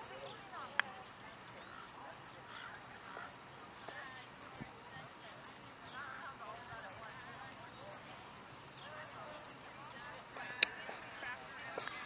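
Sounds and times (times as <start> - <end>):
faint indistinct voices talking: 0.0 - 12.0.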